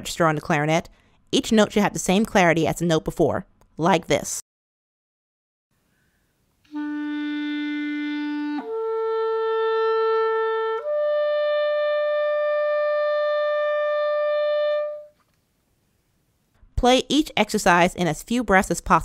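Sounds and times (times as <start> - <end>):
clarinet long notes: 6.6 - 15.2.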